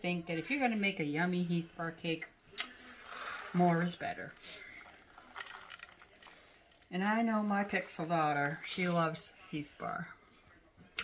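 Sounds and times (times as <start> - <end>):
toffee bits scattering: 2.8 - 8.7.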